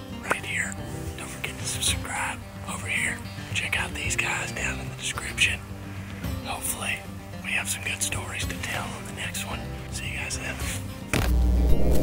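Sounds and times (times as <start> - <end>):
background music with low tones: 0.0 - 12.0
man whispering: 0.2 - 5.6, 6.4 - 10.9.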